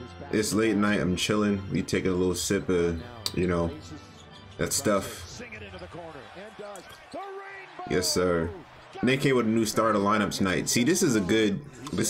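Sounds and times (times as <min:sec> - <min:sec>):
commentator talking: 0:04.6 - 0:12.0.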